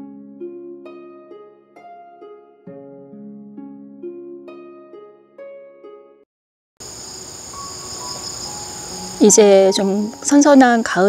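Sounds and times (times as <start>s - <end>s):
insects trilling: 6.8s - 11.0s.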